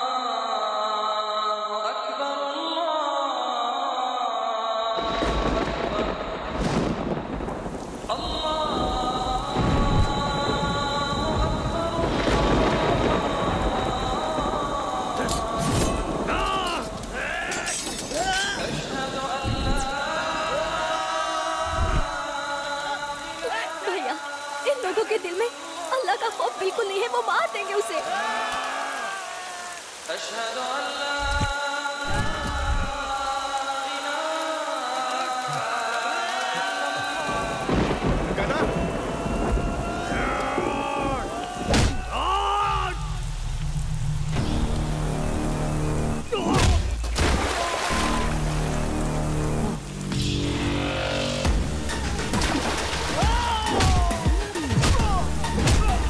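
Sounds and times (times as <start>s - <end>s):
heavy rain: 0.0s - 56.0s
low thunder-like rumble: 5.2s - 17.0s, 18.9s - 20.7s, 21.6s - 22.3s
deep low rumble: 21.6s - 22.2s.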